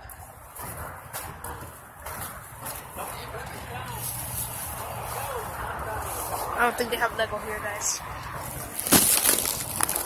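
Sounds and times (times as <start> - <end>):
outdoor market noise: 0.0 - 10.0
distant people talking: 2.7 - 8.2.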